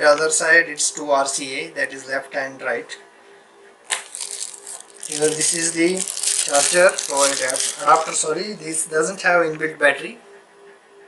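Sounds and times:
plastic bag crinkling: 0:03.9 - 0:08.8.

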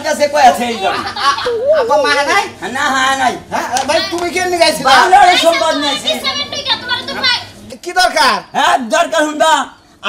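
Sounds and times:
people in animated dialogue: 0:00.0 - 0:10.0.

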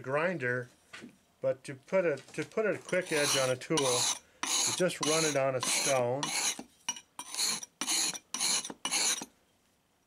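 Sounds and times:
chisel rasping on sharpening stone: 0:02.9 - 0:09.3.

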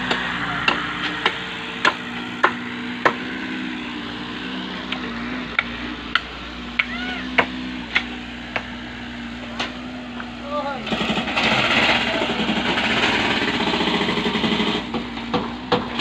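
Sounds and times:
machinery engine hum: 0:00.0 - 0:16.0.

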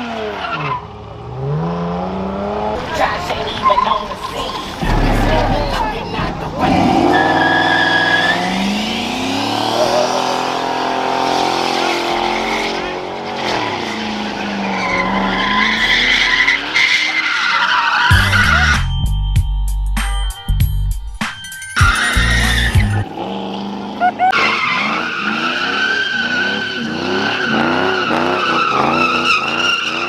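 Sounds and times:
car engine revving: 0:00.0 - 0:18.8, 0:21.9 - 0:30.0
tyres squealing: 0:02.8 - 0:09.0, 0:12.3 - 0:18.9, 0:21.8 - 0:23.1.

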